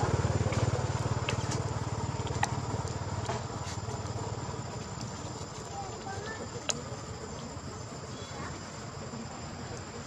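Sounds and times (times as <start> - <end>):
insects buzzing: 0.0 - 10.0.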